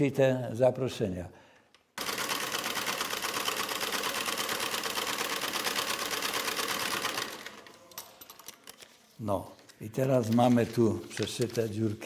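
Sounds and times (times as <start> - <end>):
sewing machine clattering: 2.0 - 8.8.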